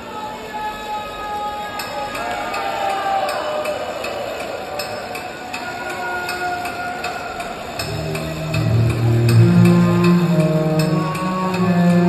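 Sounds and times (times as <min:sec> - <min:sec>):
crowd shouts and whistles: 0:00.0 - 0:08.6
deep loud droning intro: 0:07.8 - 0:12.0.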